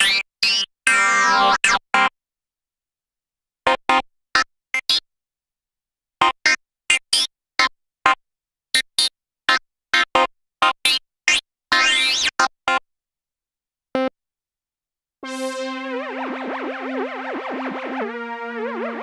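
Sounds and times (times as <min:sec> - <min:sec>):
synthesizer held note sweeping: 0:15.2 - 0:19.0.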